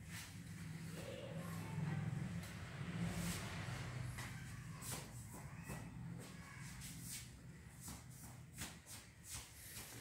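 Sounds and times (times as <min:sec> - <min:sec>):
soft shuffling: 0:06.2 - 0:10.0.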